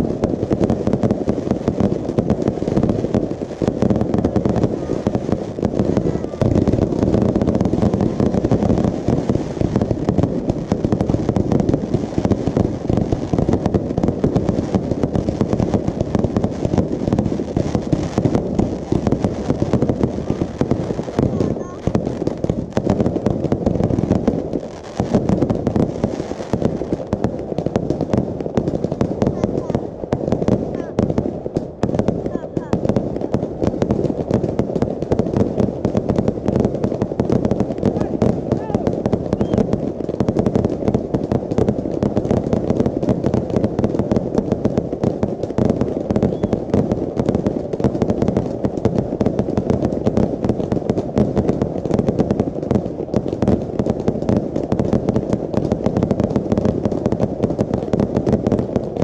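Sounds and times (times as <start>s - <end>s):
fireworks bangs: 0.0s - 59.0s.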